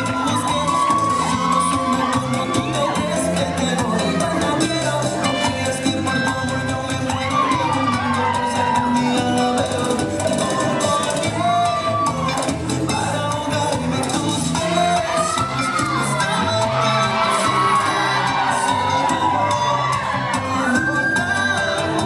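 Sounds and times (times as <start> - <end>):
audience cheering and whooping: 0.0 - 5.0, 6.9 - 12.6, 14.6 - 22.0
loud latin dance music: 0.0 - 22.0.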